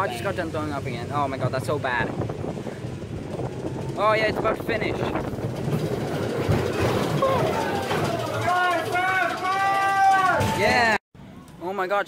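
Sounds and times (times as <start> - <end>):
amusement park ride running: 0.0 - 11.0.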